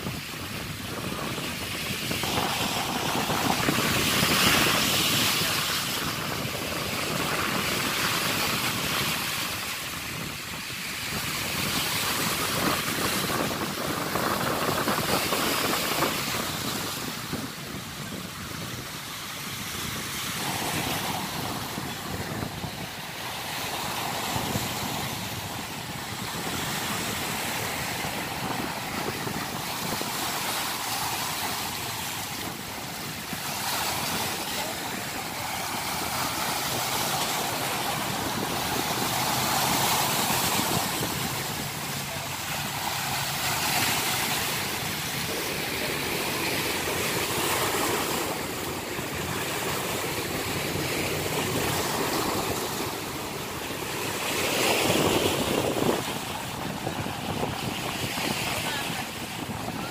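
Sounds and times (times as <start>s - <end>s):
waves splashing against rocks: 0.0s - 59.9s.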